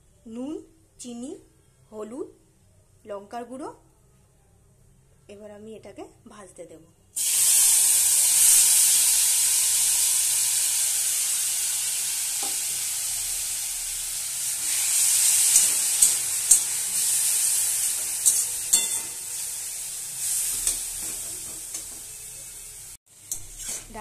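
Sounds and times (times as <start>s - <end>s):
food sizzling in wok: 7.2s - 24.0s
spatula scraping a pan: 14.6s - 19.3s, 20.2s - 22.3s, 23.2s - 24.0s.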